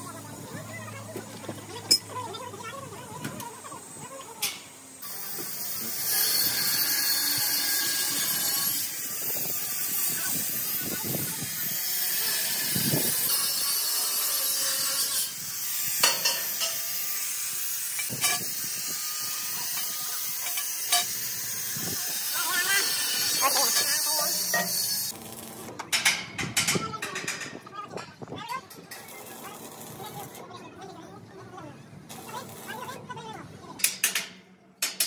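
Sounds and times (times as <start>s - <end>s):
arc welding sizzling hiss: 3.0s - 25.7s.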